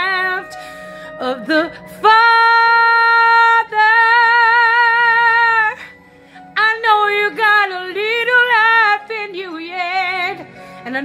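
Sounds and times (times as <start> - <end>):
woman singing with vibrato: 0.0 - 0.6, 1.2 - 6.0, 6.6 - 11.0
faint karaoke backing track: 0.0 - 11.0.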